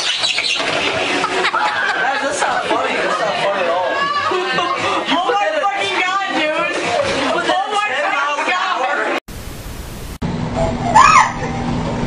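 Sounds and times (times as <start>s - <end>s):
people talking: 1.5s - 9.2s
video static hiss: 9.3s - 10.2s.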